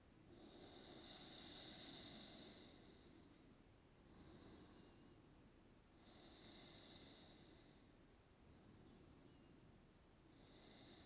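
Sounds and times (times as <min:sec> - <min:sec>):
faint slow exhale: 0:00.3 - 0:05.3, 0:06.0 - 0:09.4, 0:10.3 - 0:11.0.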